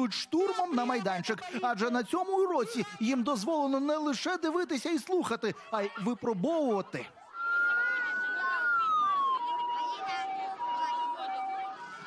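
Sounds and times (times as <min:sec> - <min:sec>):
police siren: 0:07.3 - 0:12.0.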